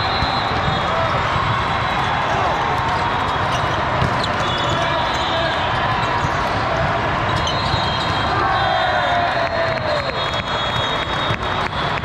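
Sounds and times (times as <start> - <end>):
sneaker squeaks: 0.0 - 2.1, 2.8 - 6.6, 7.2 - 8.4
volleyballs thudding: 0.1 - 5.2.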